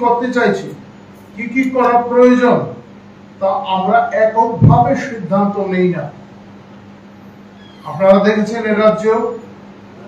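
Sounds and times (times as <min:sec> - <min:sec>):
man speaking into microphones: 0:00.0 - 0:06.2, 0:07.8 - 0:09.5
steady low hum: 0:00.0 - 0:10.0.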